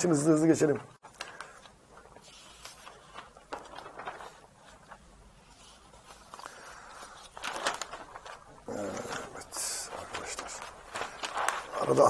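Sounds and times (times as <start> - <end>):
newspaper pages rustling: 1.0 - 12.0.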